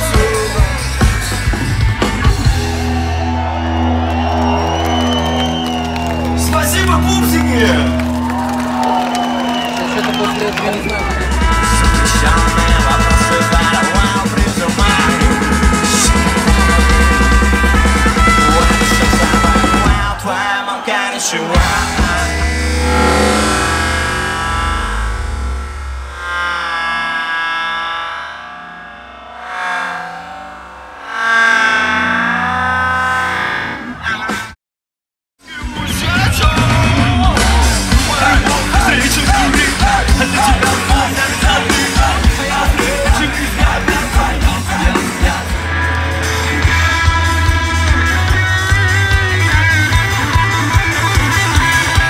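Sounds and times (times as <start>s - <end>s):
live band music: 0.0s - 3.6s, 5.2s - 20.2s, 21.6s - 25.2s, 35.5s - 52.0s
distorted electric guitar chords: 0.0s - 20.2s, 21.6s - 34.6s, 35.5s - 52.0s
crowd cheering and shouting: 0.0s - 34.6s, 35.4s - 52.0s.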